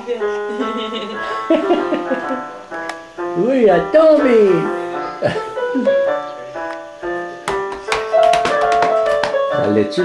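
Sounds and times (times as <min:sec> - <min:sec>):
electronic keyboard piano notes: 0:00.0 - 0:10.0.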